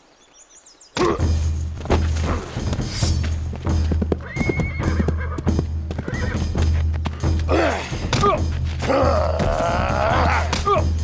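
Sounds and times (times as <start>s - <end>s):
clip-clopping hoofbeats: 1.2s - 10.7s
horse whinnying: 4.2s - 6.5s.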